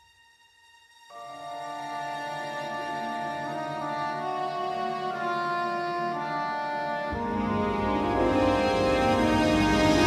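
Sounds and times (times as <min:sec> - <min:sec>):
orchestral music with brass chords: 0:00.4 - 0:10.0.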